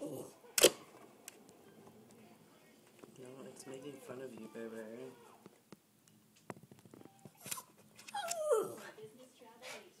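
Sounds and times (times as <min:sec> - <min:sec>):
dog whining: 0:07.4 - 0:08.9.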